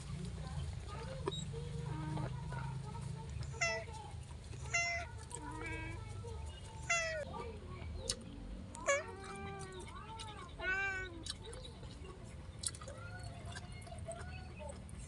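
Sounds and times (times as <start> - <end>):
cat meowing: 4.7 - 5.9, 6.9 - 7.2, 8.8 - 9.7.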